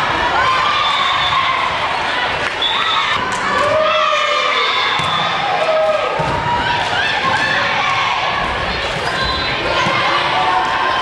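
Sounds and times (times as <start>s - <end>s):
people shouting and cheering: 0.0s - 11.0s
volleyball thumps: 4.9s - 5.5s, 6.1s - 8.2s.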